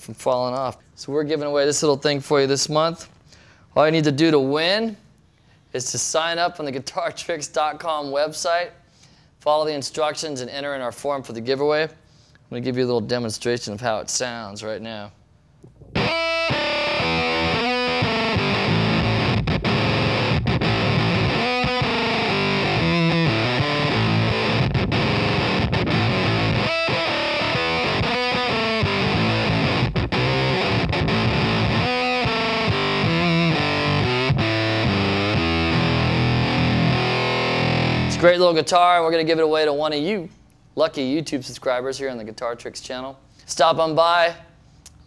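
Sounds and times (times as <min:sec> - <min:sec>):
distorted electric guitar riffs: 0:15.8 - 0:38.3.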